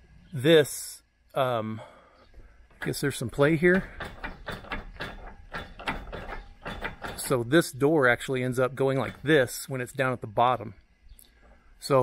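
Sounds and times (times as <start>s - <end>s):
garage door hardware rattling: 2.8s - 7.6s, 8.9s - 9.5s.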